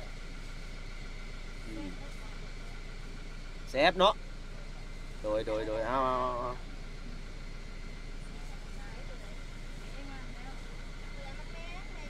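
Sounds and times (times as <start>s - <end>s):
engine idling hum: 0.0s - 12.0s
faint voices: 1.6s - 3.3s.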